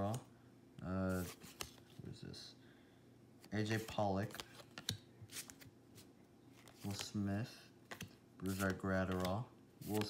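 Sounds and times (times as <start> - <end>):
cards brushing: 1.1 - 2.0, 3.6 - 7.3, 7.9 - 10.0.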